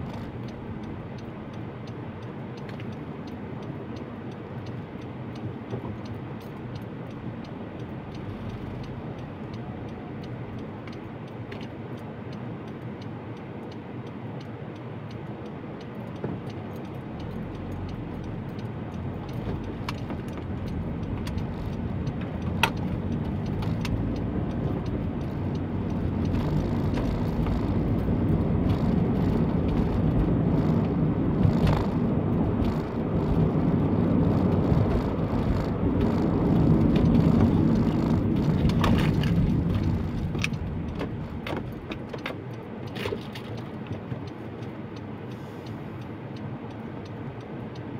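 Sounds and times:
car engine and road rumble: 0:00.0 - 0:47.9.

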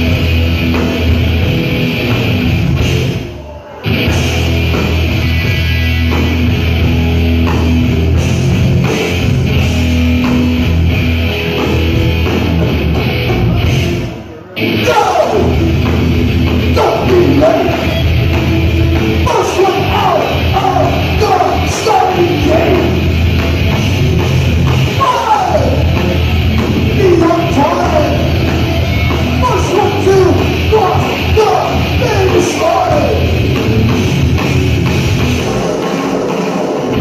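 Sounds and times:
bass guitar: 0:00.0 - 0:37.0
distorted electric guitars: 0:00.0 - 0:37.0
drum kit: 0:00.0 - 0:37.0
thrash metal band playing loud: 0:00.0 - 0:37.0.

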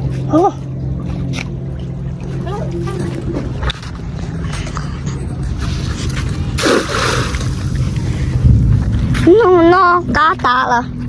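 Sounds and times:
steady low hum: 0:00.0 - 0:11.0
net splashing into water: 0:06.6 - 0:07.6.

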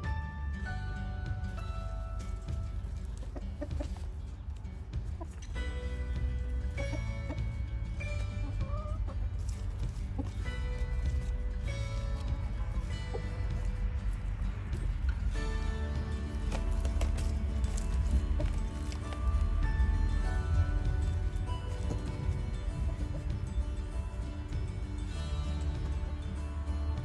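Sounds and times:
background music with held notes: 0:00.0 - 0:27.0
chickens clucking: 0:00.8 - 0:27.0.

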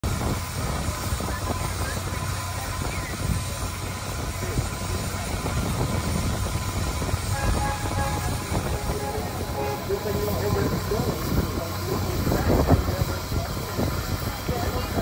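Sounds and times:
steam locomotive rumble and hiss: 0:00.0 - 0:15.0
people talking faintly: 0:00.6 - 0:15.0.

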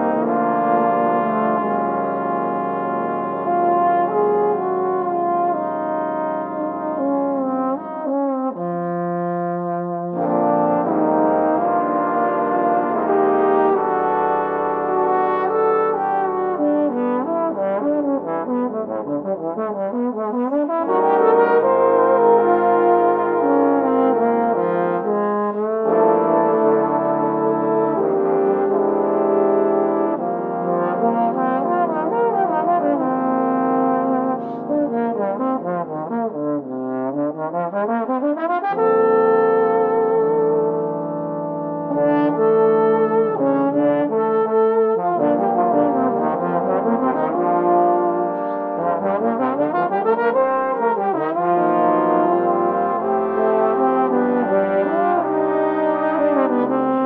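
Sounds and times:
solo trombone melody: 0:00.0 - 0:57.0
trombone ensemble harmony: 0:00.0 - 0:57.0.

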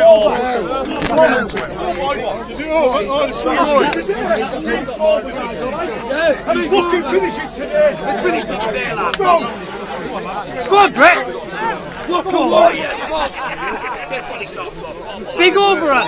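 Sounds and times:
men talking and calling out: 0:00.0 - 0:16.0.

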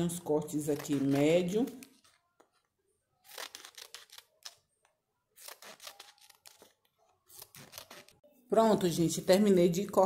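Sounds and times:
scissors snipping paper: 0:00.5 - 0:02.0, 0:03.2 - 0:04.7, 0:05.4 - 0:08.2.

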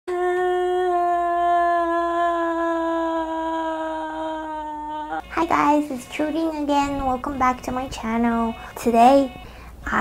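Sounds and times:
woman wailing: 0:00.7 - 0:05.3.

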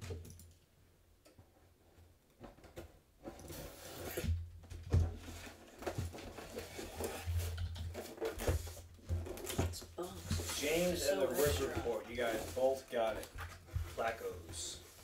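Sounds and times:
cardboard scraping and rustling: 0:03.2 - 0:04.4, 0:05.0 - 0:15.0.

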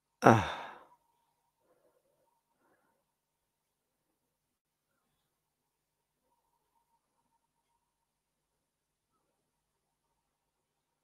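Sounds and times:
person sighing: 0:00.2 - 0:00.9.

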